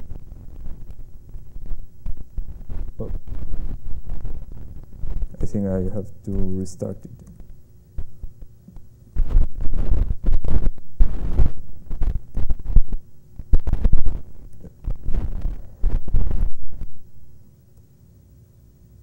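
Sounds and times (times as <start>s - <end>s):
microphone handling thumps: 0.0s - 5.6s, 7.2s - 17.0s.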